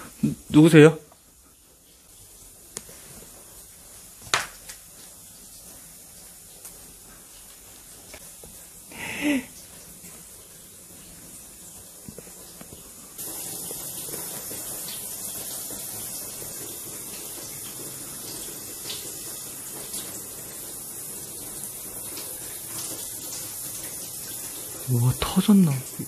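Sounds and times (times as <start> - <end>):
water spraying from a leak: 0.0 - 26.0.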